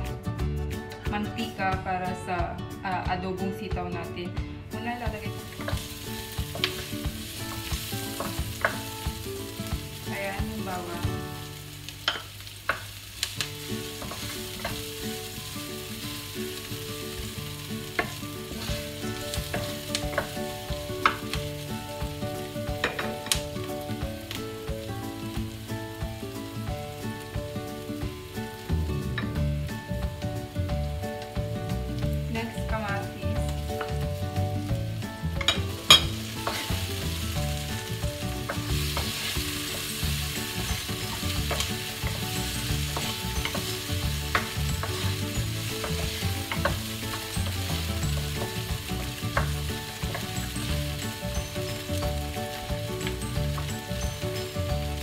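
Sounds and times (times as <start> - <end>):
onion sizzling in hot oil: 4.8 - 55.0
wooden spatula scraping pan: 35.5 - 37.3.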